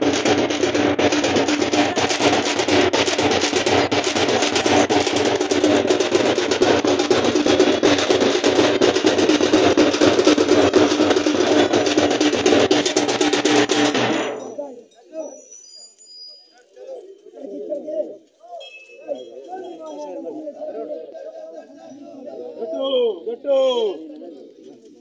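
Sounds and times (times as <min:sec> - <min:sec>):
drums played fast: 0:00.0 - 0:14.6.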